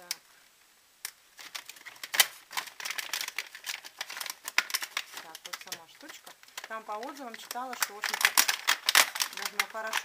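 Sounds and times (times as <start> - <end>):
plastic packaging crackling: 1.0 - 10.0.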